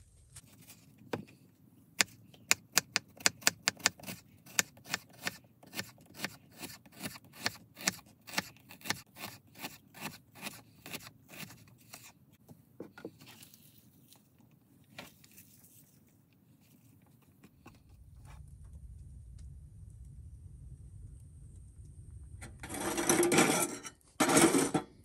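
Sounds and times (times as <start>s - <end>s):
knife chopping on wooden board: 2.0s - 11.5s.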